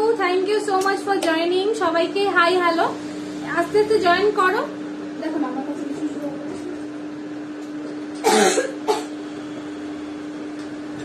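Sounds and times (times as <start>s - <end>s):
steady electrical hum: 0.0s - 11.0s
woman coughing: 8.2s - 9.2s.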